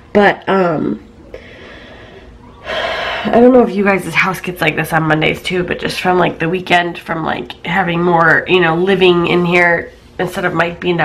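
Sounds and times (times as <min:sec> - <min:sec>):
woman speaking: 0:00.0 - 0:01.1, 0:03.1 - 0:11.0
woman breathing: 0:01.2 - 0:03.4.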